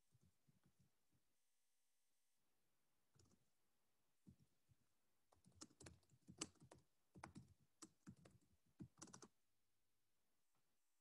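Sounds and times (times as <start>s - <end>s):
typing on computer keyboard: 5.4s - 9.4s.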